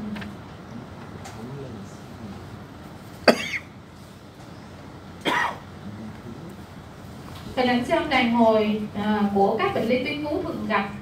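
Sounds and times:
person coughing: 0:03.2 - 0:03.7, 0:05.2 - 0:05.6.

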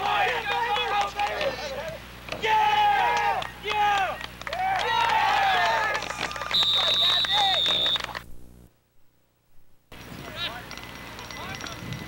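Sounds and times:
spectators shouting: 0:00.0 - 0:08.1
long referee's whistle blast: 0:06.5 - 0:08.2.

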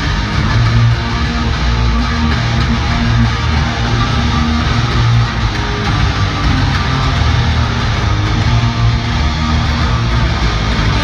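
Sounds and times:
punk rock over arena speakers: 0:00.0 - 0:11.0.

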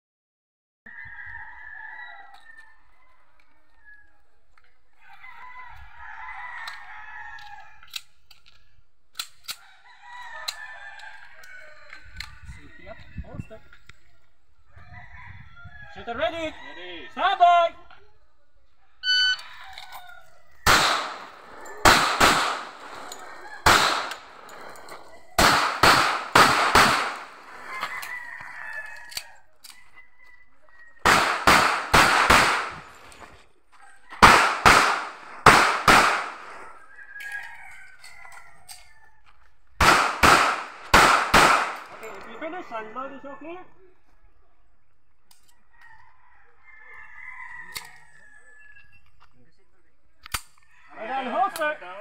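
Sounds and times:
shot timer beep: 0:19.0 - 0:19.4
pistol shots: 0:20.6 - 0:27.6, 0:31.0 - 0:33.0, 0:34.2 - 0:36.7, 0:39.8 - 0:42.1.

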